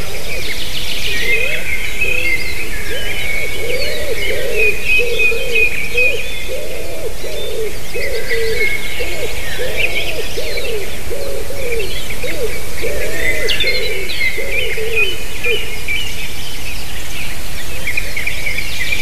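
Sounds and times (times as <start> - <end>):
low cooing notes: 0.0 - 15.7
songbirds chirping and trilling: 0.0 - 19.0.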